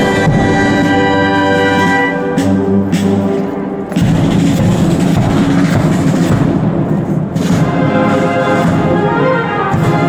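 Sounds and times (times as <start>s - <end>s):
marching band with brass and drums: 0.0s - 10.0s.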